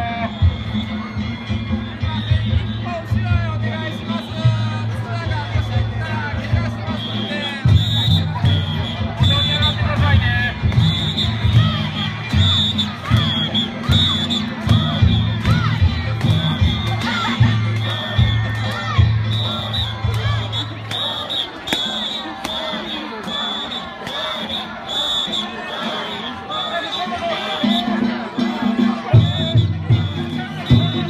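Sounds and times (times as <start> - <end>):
festival music: 0.0 - 31.0
low drum beat: 7.7 - 20.9, 27.6 - 31.0.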